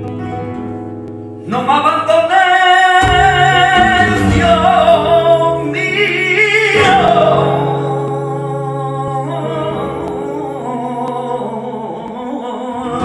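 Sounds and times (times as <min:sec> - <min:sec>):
flamenco guitar notes: 0:00.0 - 0:13.0
man singing flamenco: 0:01.4 - 0:13.0.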